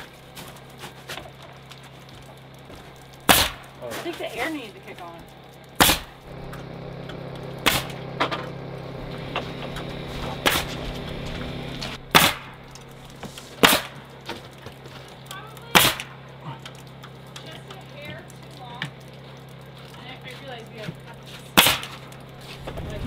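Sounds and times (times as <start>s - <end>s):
steady low hum: 0.0s - 23.0s
nail gun shots: 3.3s - 3.6s, 5.8s - 6.2s.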